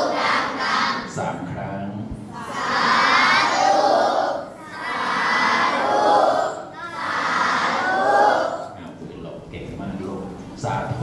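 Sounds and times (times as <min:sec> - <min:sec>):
children calling out together: 0:02.3 - 0:08.8.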